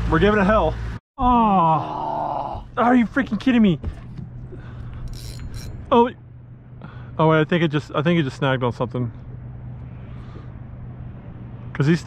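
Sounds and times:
man exclaiming in surprise: 1.2 - 2.9
steady low hum: 2.4 - 12.0.

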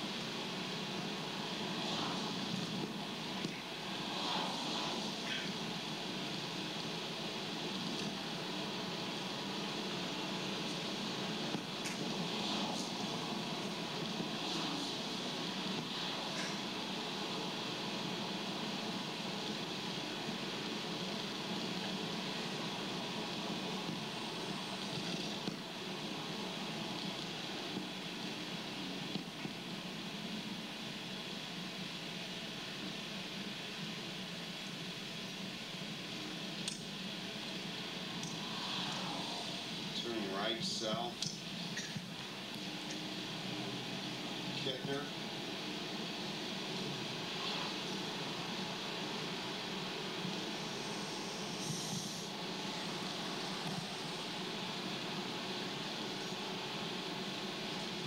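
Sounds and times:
faint ticks: 36.6 - 36.9.

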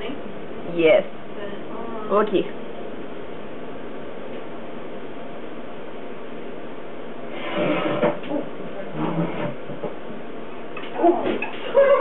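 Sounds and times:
room tone hiss: 0.0 - 11.0
chair scraping and knocking: 7.3 - 10.2.

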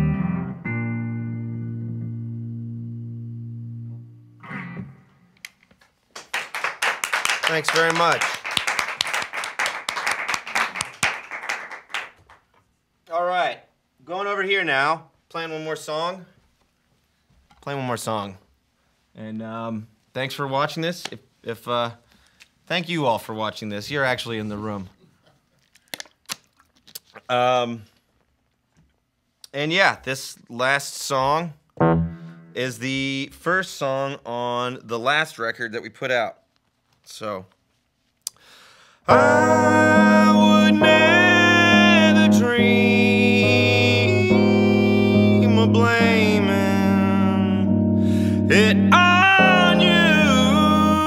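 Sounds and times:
electric keyboard chords: 0.0 - 5.0, 31.8 - 32.8, 39.1 - 51.0
man singing: 39.1 - 51.0.

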